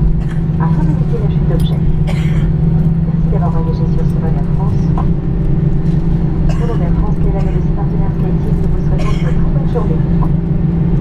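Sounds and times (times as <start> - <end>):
airliner engine drone: 0.0 - 11.0
faint passenger voices: 0.2 - 11.0.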